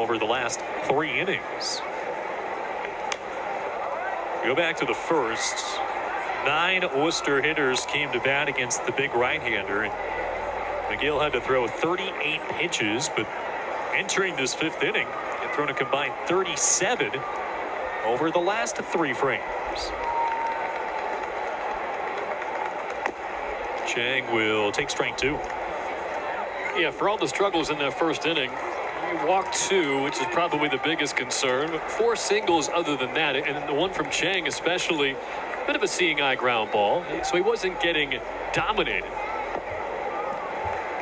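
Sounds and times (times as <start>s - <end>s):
stadium crowd noise: 0.0s - 41.0s.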